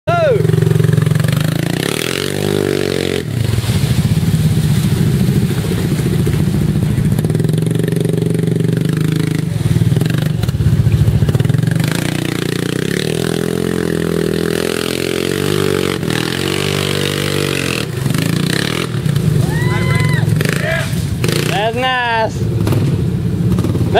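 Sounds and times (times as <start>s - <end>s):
off-road vehicle engine revving: 0.1s - 23.9s.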